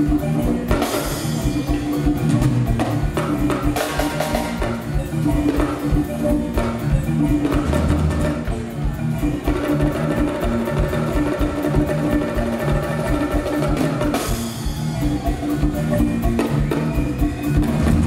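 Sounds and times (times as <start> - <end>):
wooden xylophones played with mallets: 0.0 - 18.0.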